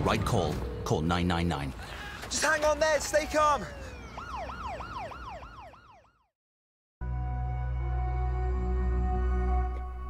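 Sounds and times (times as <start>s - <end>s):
emergency siren yelping: 2.4s - 6.3s.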